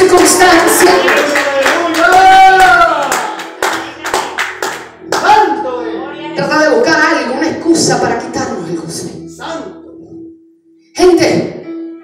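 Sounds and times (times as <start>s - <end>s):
hands clapping a steady beat: 0.0s - 5.4s
music: 0.0s - 12.0s.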